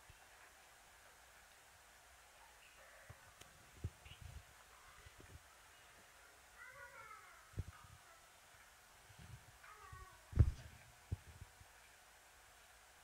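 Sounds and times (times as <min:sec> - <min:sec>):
dull low thumps: 0:10.3 - 0:11.4.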